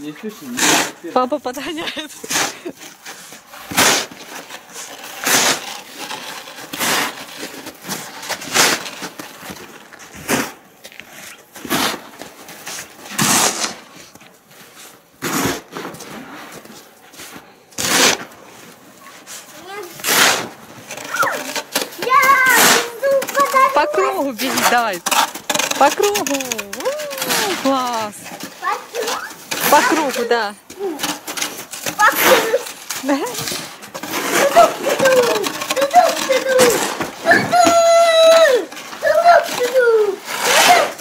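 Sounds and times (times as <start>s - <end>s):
snow shovel scraping: 0.0s - 41.0s
child's voice: 19.5s - 20.0s, 21.0s - 24.7s, 28.6s - 31.0s, 32.0s - 32.7s, 34.4s - 41.0s.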